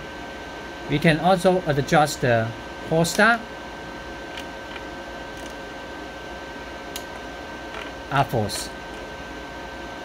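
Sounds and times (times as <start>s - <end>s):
cooling fan running: 0.0s - 10.0s
welder humming with high whine: 0.0s - 10.0s.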